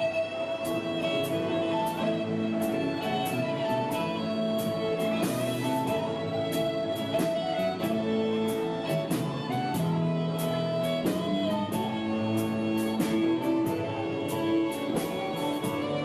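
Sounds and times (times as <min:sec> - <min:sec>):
electric guitar strumming: 0:00.0 - 0:16.0
sliding held melody notes: 0:00.0 - 0:16.0.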